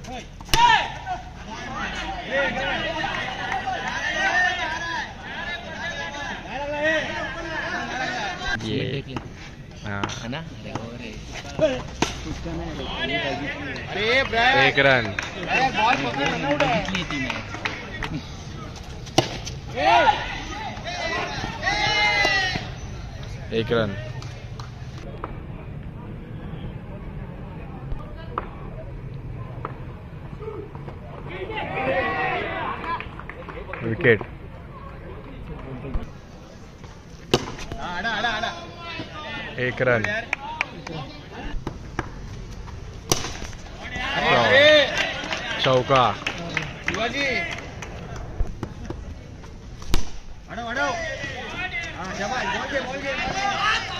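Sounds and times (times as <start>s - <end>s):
players shouting: 0.0s - 8.6s, 11.5s - 24.6s, 29.4s - 34.0s, 37.3s - 41.7s, 43.0s - 49.0s, 50.0s - 53.9s
cricket bat hitting ball: 37.3s - 37.8s, 43.0s - 43.6s
sharp crack: 43.0s - 43.7s, 49.8s - 50.4s.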